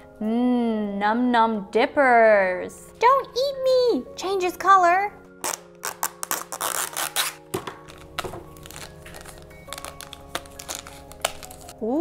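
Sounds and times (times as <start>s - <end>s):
light background music: 0.0s - 12.0s
plastic wrapper tearing and crinkling: 5.4s - 11.8s.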